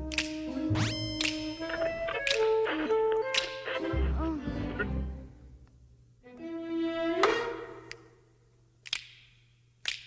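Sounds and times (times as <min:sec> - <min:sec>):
sharp clicks: 0:01.0 - 0:03.8.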